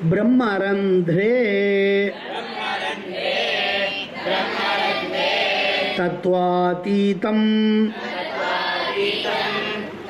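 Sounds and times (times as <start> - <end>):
teacher chanting: 1.6 - 10.0
group chanting in unison: 2.1 - 6.2, 7.9 - 10.0.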